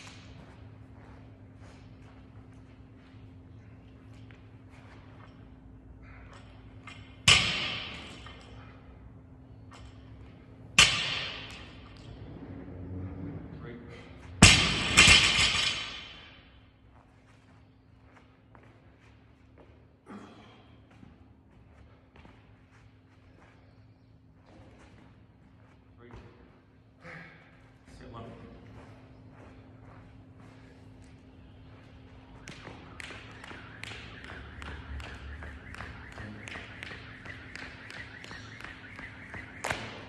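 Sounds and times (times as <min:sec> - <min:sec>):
barbell dropped on gym floor: 0:06.0 - 0:08.6, 0:10.8 - 0:12.1, 0:14.4 - 0:16.4.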